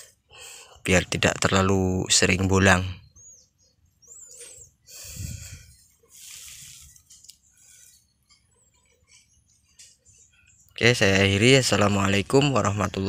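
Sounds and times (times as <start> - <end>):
high bird chirp: 0.4 - 13.0
soft rustles: 5.2 - 10.5.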